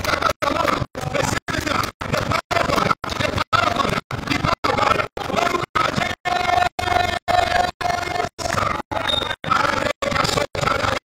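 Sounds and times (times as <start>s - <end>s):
distorted rasping loudspeaker sound: 0.0s - 11.0s.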